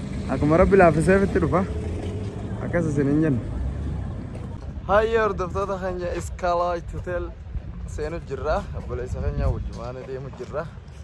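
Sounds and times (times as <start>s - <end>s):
traffic rumble: 0.0s - 11.0s
man talking: 4.9s - 10.8s.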